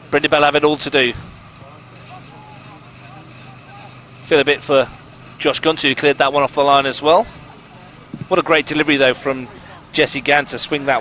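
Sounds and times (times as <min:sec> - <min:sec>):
distant voices calling: 0:00.0 - 0:11.0.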